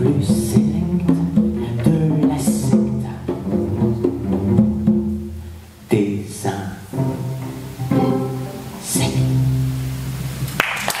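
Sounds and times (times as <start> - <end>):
audience applause: 10.4 - 11.0.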